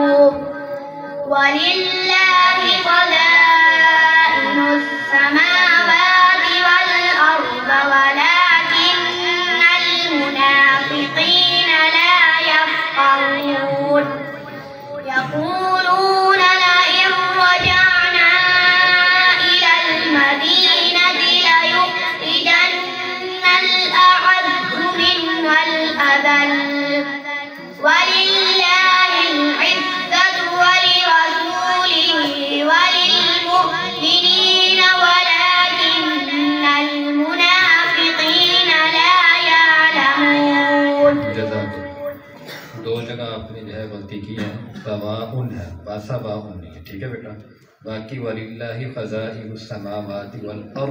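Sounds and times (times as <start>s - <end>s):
boy chanting into a microphone: 0.0s - 46.4s, 47.8s - 50.9s.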